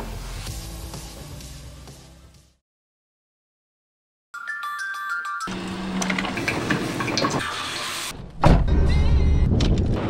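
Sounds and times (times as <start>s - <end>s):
background music: 0.0s - 2.6s.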